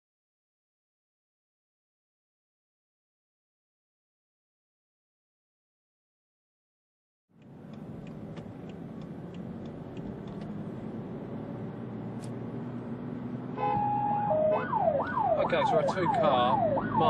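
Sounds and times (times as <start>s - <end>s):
road and engine noise: 7.3s - 17.0s
police siren: 13.6s - 17.0s.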